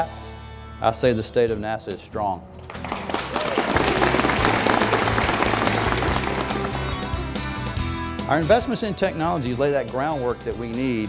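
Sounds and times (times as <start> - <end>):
low background music: 0.0 - 11.0
audience applauding: 2.7 - 7.3.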